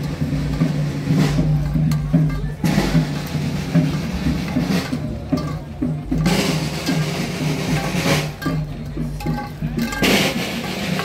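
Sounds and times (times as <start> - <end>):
band music with drums: 0.0 - 11.0
sharp drum strokes: 0.0 - 11.0.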